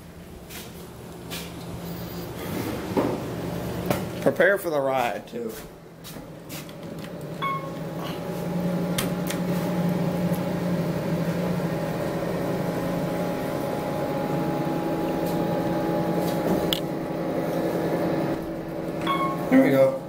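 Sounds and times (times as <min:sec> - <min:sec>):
elevator machinery humming: 0:05.8 - 0:20.0.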